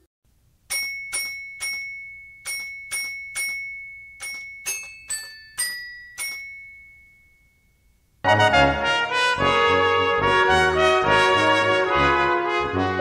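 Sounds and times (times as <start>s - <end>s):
bell-like struck notes melody: 0.7s - 8.0s
high held tone: 0.7s - 10.8s.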